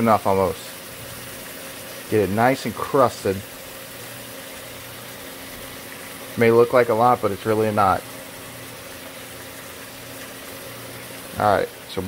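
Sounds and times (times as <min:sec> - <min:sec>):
fish sizzling in a skillet: 0:00.0 - 0:12.0.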